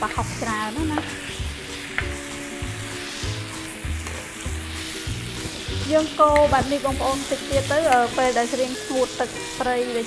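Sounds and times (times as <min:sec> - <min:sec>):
soft music with low beat: 0:00.0 - 0:09.8
meat sizzling in a pan: 0:00.0 - 0:10.0
spatula scraping a pan: 0:00.4 - 0:10.0.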